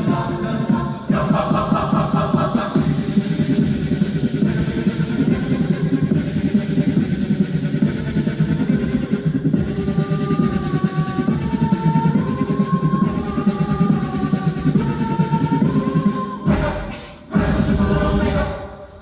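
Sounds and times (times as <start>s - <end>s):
drum-like beat: 0.0s - 18.9s
choir singing: 0.0s - 19.0s.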